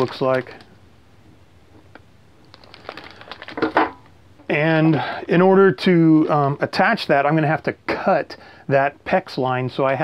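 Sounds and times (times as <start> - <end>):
plastic bag crinkling: 0.0 - 0.7, 2.4 - 4.1.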